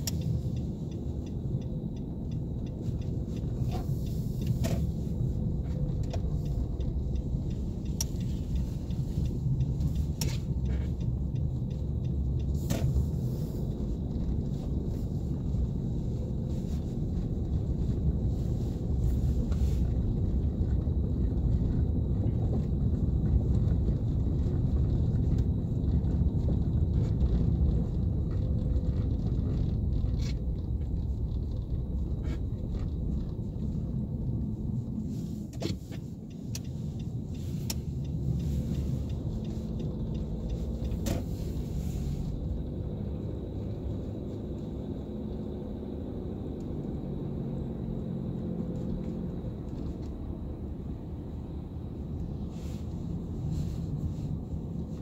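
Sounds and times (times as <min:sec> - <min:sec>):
car engine and tyre rumble: 0:00.0 - 0:55.0.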